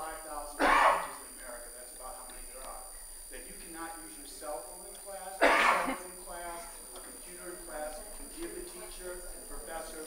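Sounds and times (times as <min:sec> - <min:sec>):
person clearing throat: 0:00.6 - 0:01.2, 0:05.4 - 0:06.1.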